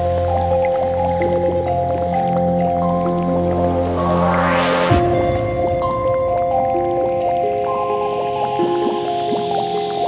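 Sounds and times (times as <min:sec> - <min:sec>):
low bass drone: 0:00.0 - 0:09.0
held synth chords: 0:00.0 - 0:10.0
rising noise sweep: 0:03.4 - 0:07.7.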